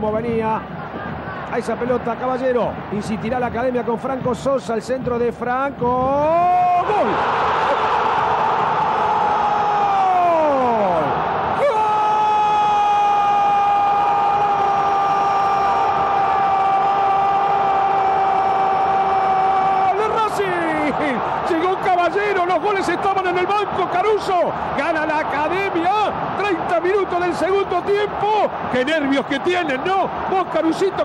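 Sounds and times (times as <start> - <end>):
crowd noise: 0.0 - 5.8, 6.5 - 31.0
fast excited shouting: 6.4 - 31.0.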